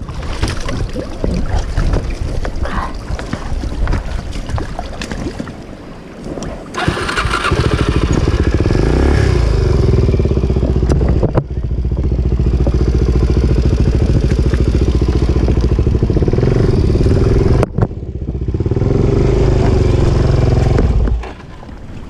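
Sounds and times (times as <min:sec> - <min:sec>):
motorcycle engine running: 0:06.8 - 0:21.3.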